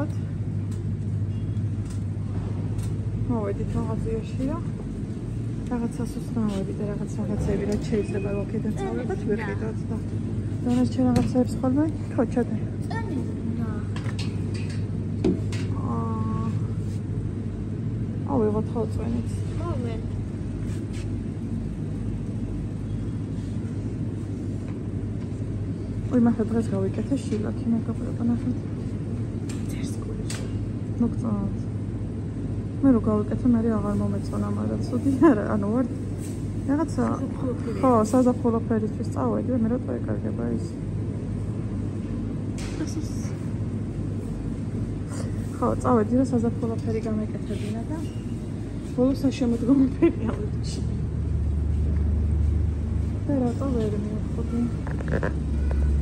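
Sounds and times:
constant hum: 0.0s - 56.0s.

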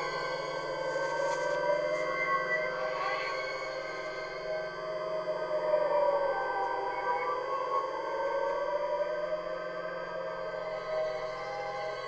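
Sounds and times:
low pulsing drone: 0.0s - 12.0s.

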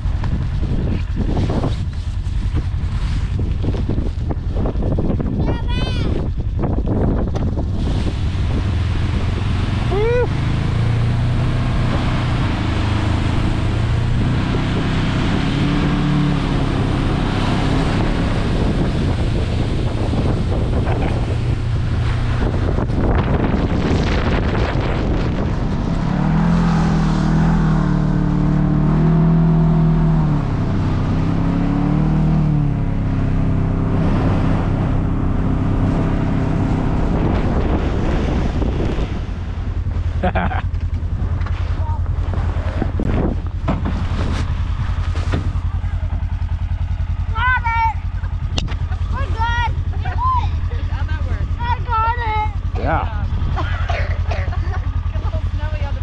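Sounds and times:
wind noise on microphone: 0.0s - 56.0s
vehicle engine revving: 6.3s - 56.0s.

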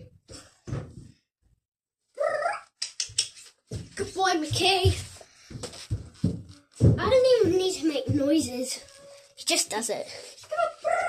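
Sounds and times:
sharp clicks: 2.8s - 3.4s.

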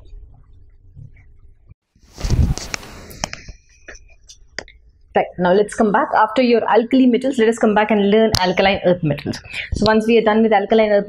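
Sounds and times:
microphone rustling: 2.0s - 4.6s.

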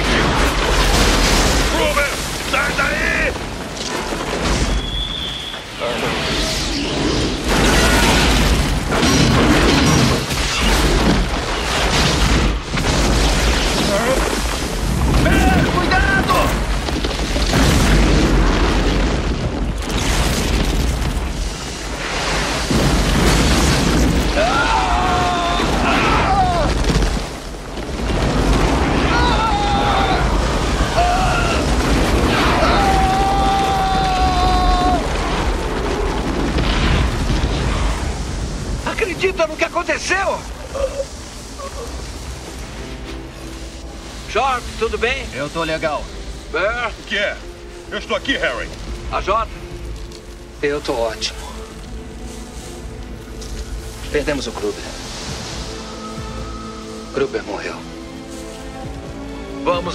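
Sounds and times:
rumbling blast: 0.0s - 40.6s
explosion roar with debris: 0.0s - 42.7s
pitched wail: 24.2s - 26.8s, 28.9s - 36.1s
men shouting: 24.3s - 26.8s, 29.0s - 31.8s, 32.4s - 35.2s.

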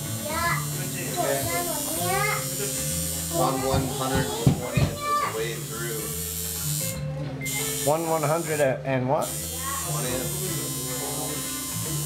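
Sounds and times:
tattoo machine buzzing: 0.0s - 12.0s.

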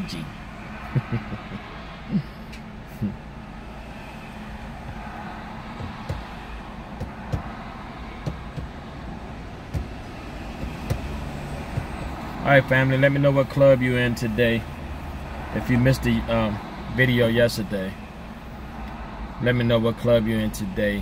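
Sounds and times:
motor vehicles rumbling: 0.0s - 21.0s
soft knocks: 5.8s - 6.3s.

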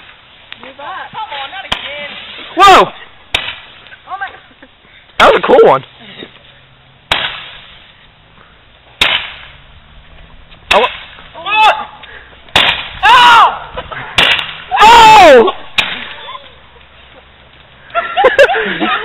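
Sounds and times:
people yelling and whooping: 11.3s - 12.1s, 13.0s - 16.9s.

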